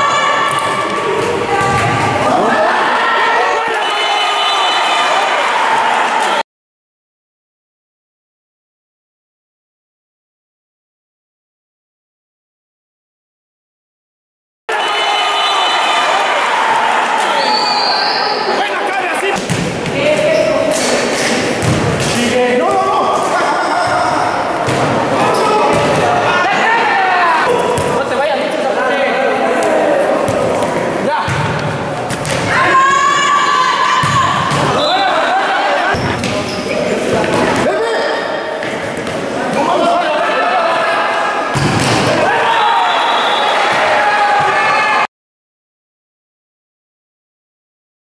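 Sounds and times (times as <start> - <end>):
people shouting in echoing gym: 0.0 - 6.4, 14.7 - 45.1
ball kicked and bouncing indoors: 0.4 - 2.2, 19.4 - 20.3, 21.6 - 22.2, 24.6 - 26.2, 27.5 - 28.0, 30.2 - 32.5
ball kicked and bouncing on court: 24.6 - 26.1, 30.2 - 32.5.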